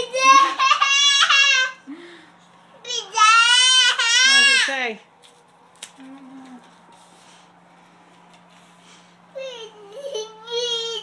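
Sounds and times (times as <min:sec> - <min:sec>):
person humming mmm: 0:06.0 - 0:06.7.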